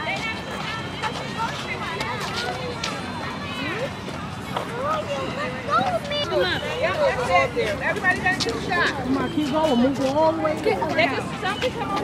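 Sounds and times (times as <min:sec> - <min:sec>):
children talking and calling out: 0:00.0 - 0:12.0
steady background noise: 0:00.0 - 0:12.0.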